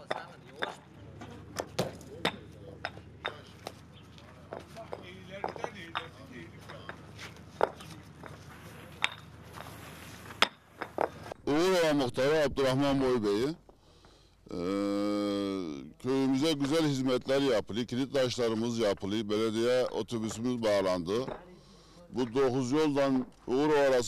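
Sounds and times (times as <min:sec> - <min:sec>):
paving stones clacking together: 0:00.0 - 0:11.4
man talking: 0:11.4 - 0:13.6, 0:14.5 - 0:21.4, 0:22.0 - 0:24.0.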